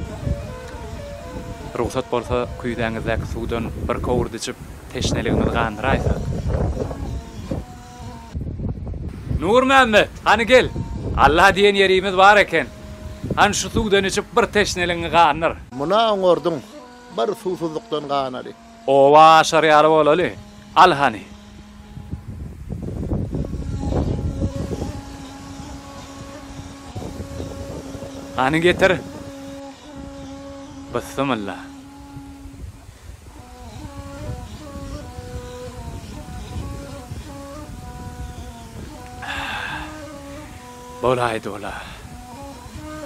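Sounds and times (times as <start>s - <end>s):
wind rumbling on microphone: 0.0s - 15.8s, 19.4s - 43.0s
faint steady hum: 20.2s - 43.0s
faint steady tones: 23.2s - 43.0s.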